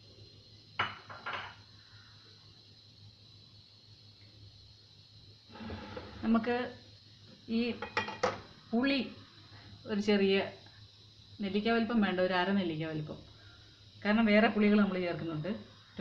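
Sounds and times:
dishes clinking: 0.8s - 1.6s, 7.8s - 8.5s.

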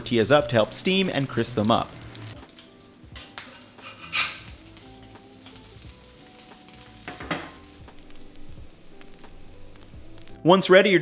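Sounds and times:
meat and tortillas sizzling on griddle: 0.0s - 10.4s.

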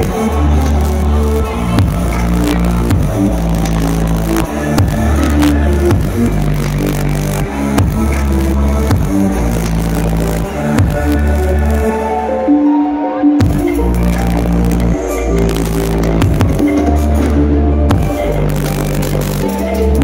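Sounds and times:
electronic dance music: 0.0s - 20.0s.

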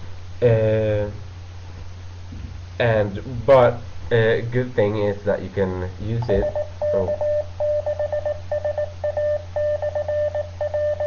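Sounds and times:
steady low hum: 0.0s - 11.0s
radio tone pulsing on and off: 6.2s - 11.0s.

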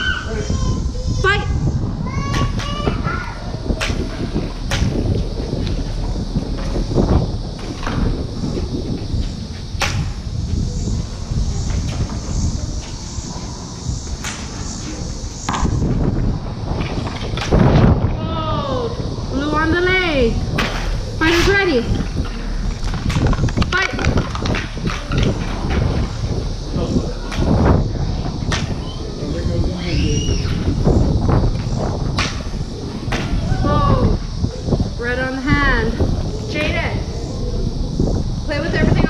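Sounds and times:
children's voices: 0.0s - 4.7s, 33.3s - 37.4s
lightsabers humming and swinging: 3.4s - 39.0s.

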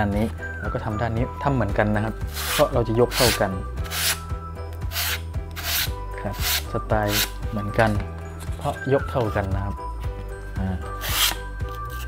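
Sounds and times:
background music: 0.0s - 12.0s
sandpaper rubbing foam: 2.3s - 4.2s, 4.9s - 7.3s.

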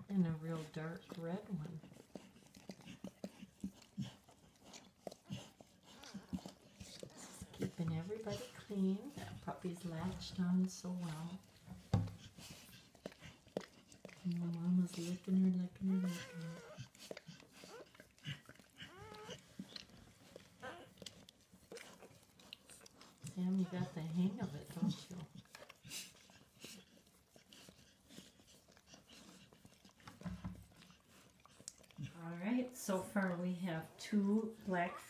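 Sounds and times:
dog licking puppy: 0.0s - 35.0s
puppies squeaking: 15.9s - 16.9s, 18.8s - 19.7s.

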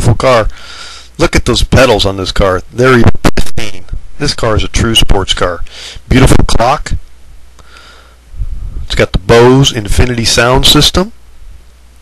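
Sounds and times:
man narrating: 0.0s - 0.6s, 1.2s - 7.0s, 8.9s - 11.2s
faint breath: 0.5s - 1.2s, 5.7s - 6.1s, 7.6s - 8.8s.

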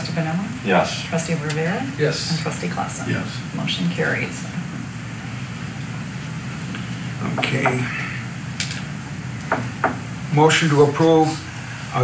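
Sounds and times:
low hum: 0.0s - 12.0s
even hiss: 0.5s - 12.0s.

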